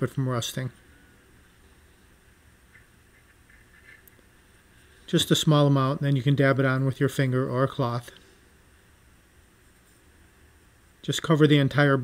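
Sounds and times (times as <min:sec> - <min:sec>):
faint handling sounds: 0:00.6 - 0:05.2, 0:09.4 - 0:10.3.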